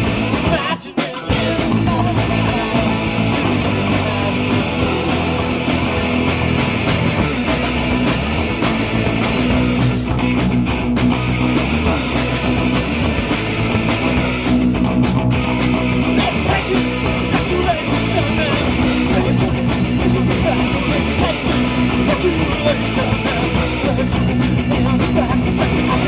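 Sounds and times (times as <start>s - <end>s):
drum kit: 0.0s - 26.0s
electric guitars: 0.0s - 26.0s.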